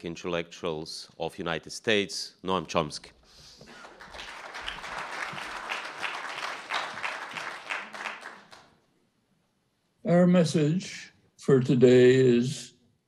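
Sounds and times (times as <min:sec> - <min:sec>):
audience applauding: 0:03.7 - 0:08.8.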